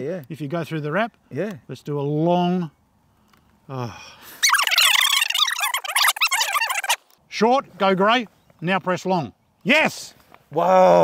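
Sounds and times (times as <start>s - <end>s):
flock of birds chirping: 4.4s - 7.0s.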